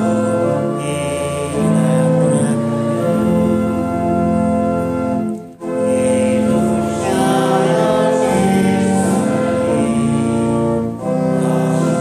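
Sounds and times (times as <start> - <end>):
organ playing a hymn: 0.0 - 12.0
voices singing: 5.7 - 12.0.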